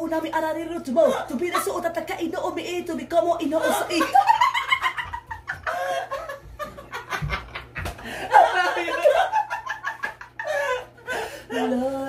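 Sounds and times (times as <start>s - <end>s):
men laughing: 3.5s - 11.8s.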